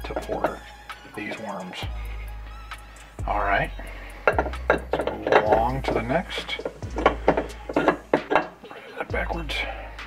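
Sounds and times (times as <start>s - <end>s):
metal plates clinking and knocking: 0.0s - 0.6s, 4.2s - 9.0s.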